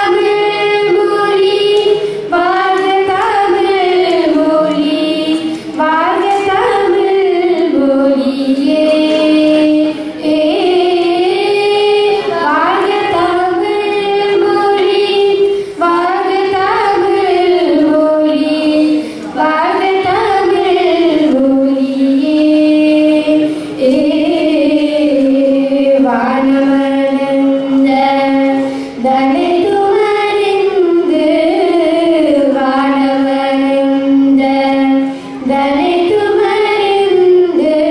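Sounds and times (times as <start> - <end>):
girls singing into microphones: 0.0 - 37.9.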